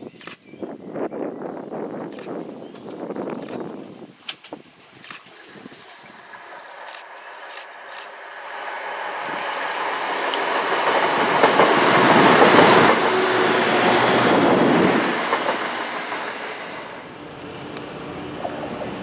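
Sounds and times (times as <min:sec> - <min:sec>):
train passing on rails: 0:05.3 - 0:19.0.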